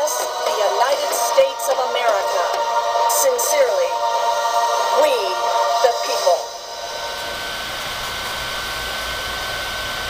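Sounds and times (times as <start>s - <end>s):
thin high whine: 0.0s - 10.0s.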